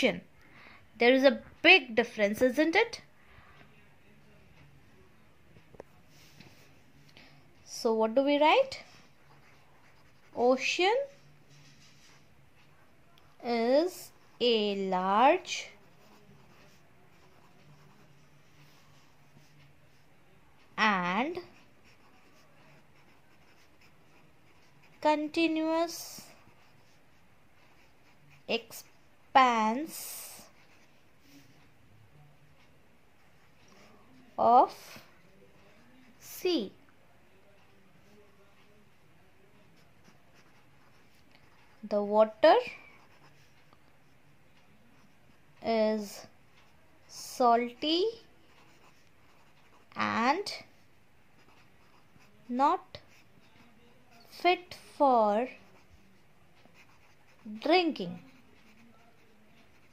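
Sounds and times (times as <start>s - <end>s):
pencil scratching on paper: 8.1s - 12.7s, 13.3s - 31.7s, 32.5s - 36.8s, 39.6s - 44.3s, 44.9s - 59.9s.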